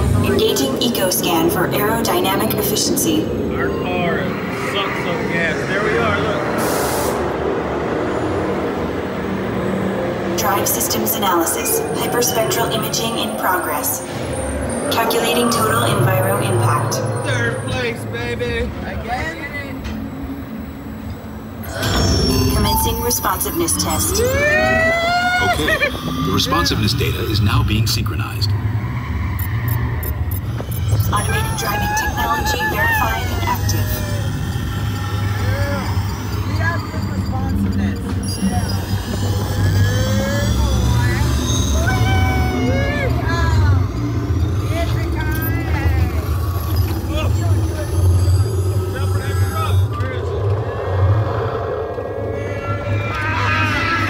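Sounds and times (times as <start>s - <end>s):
pitched sounds gliding: 7.3s - 19.7s
ride vehicle rumbling on track: 22.6s - 54.0s.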